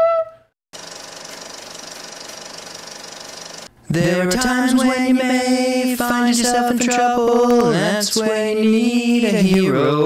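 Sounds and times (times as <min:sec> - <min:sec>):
held flute note: 0:00.0 - 0:00.5
fast rattling mechanical buzz: 0:00.8 - 0:03.7.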